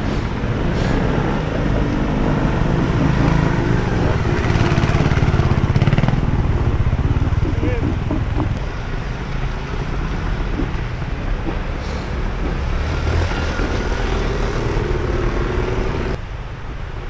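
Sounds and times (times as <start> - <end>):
motorcycle engine running: 1.3 - 8.8.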